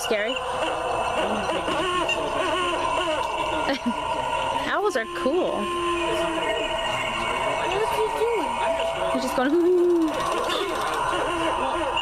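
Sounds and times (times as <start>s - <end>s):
toy owl hooting through speaker: 0.0s - 12.0s.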